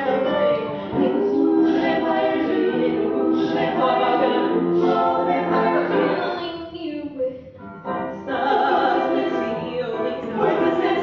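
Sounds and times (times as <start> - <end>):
vocal ensemble singing in harmony: 0.0 - 6.6, 7.7 - 11.0.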